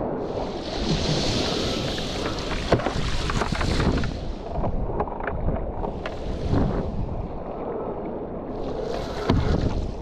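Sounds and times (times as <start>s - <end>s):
wind rushing over microphone: 0.0s - 10.0s
water hissing and splashing: 0.3s - 4.4s.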